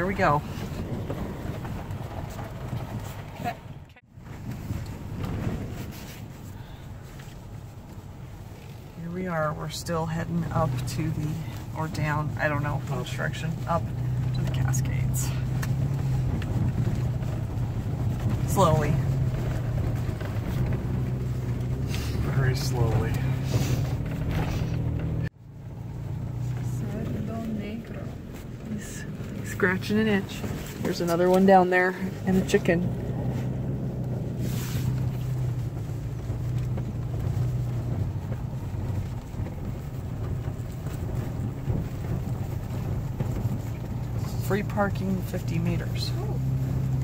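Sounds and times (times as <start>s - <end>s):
car road and engine rumble: 0.0s - 47.0s.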